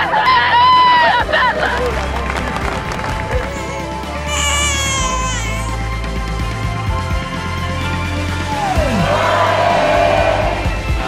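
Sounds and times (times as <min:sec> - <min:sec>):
background music with low drone: 0:00.0 - 0:11.0
woman wailing: 0:03.3 - 0:05.8
newborn baby crying: 0:03.3 - 0:06.0.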